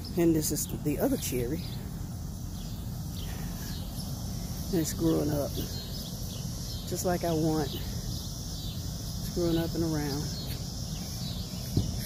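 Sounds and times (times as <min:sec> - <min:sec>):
insects hissing: 0:00.0 - 0:12.0.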